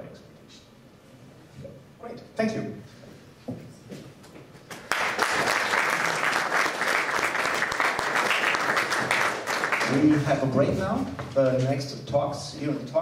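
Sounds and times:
audience applauding: 4.7s - 10.3s.

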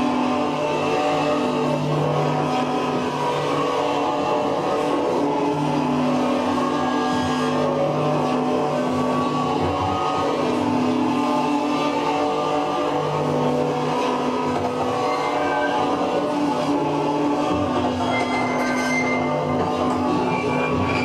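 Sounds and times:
amplified noise-music drone: 0.0s - 21.0s.

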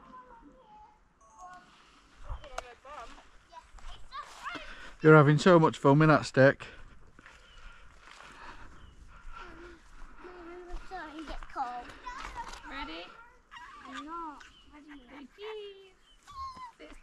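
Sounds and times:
distant children calling and babbling: 0.0s - 2.6s.

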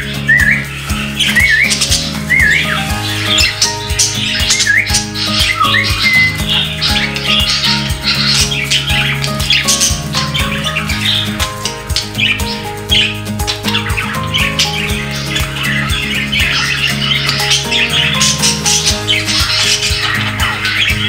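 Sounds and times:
background music with steady beat: 0.0s - 21.0s
budgerigars chattering and squawking: 0.0s - 21.0s
wavy whistled bird notes: 0.0s - 21.0s.

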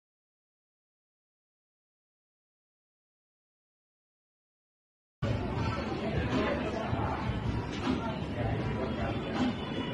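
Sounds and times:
chatter of many voices: 5.2s - 9.9s.

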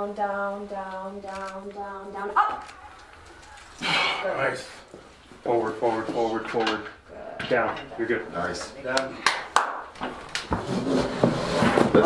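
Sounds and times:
voices: 0.0s - 9.2s.

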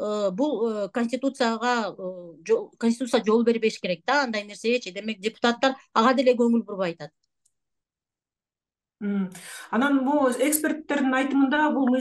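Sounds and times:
person speaking: 9.0s - 12.0s.

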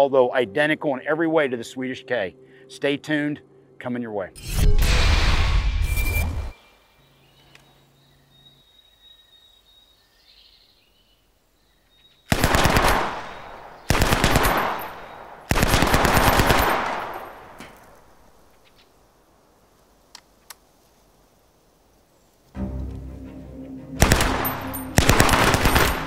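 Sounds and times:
submachine gun firing bursts: 12.3s - 17.4s, 24.0s - 26.0s
gunfire echo: 12.3s - 17.8s, 24.0s - 26.0s.

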